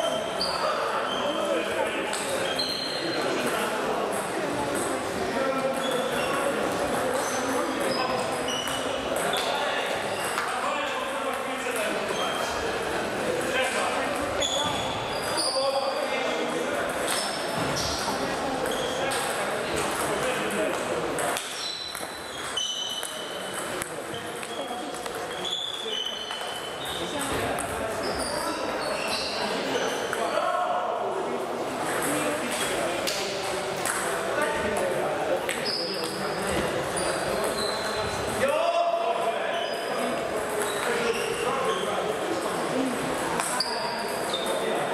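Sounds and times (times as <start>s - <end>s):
indistinct chatter: 0.0s - 44.9s
murmur of voices: 0.0s - 44.9s
table tennis ball hits: 16.9s - 25.4s, 31.9s - 34.1s.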